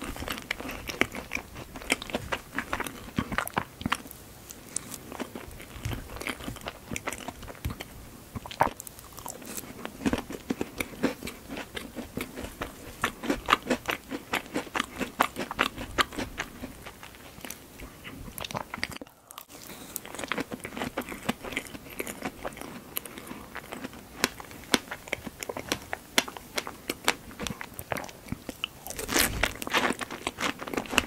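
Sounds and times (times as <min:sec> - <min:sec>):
biting and chewing pastry: 0:00.0 - 0:31.0.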